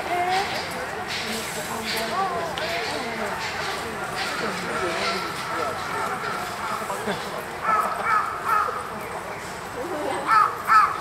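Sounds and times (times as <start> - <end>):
murmur of crowd: 0.0 - 11.0
crow cawing: 8.0 - 8.8, 10.3 - 11.0.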